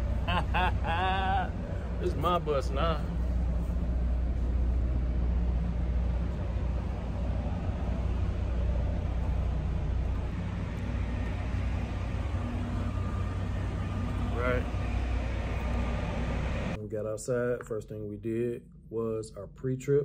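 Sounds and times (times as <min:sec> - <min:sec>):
bus engine idling hum: 0:00.0 - 0:16.8.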